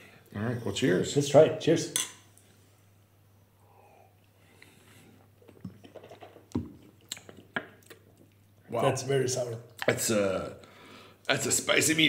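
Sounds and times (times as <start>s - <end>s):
people sipping and swallowing: 4.1s - 8.6s
lip smacks: 5.4s - 8.6s.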